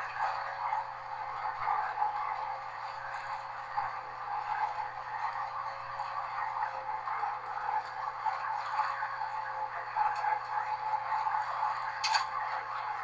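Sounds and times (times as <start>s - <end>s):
faint constant tone: 0.0s - 13.0s
train hum and rumble: 0.0s - 13.0s.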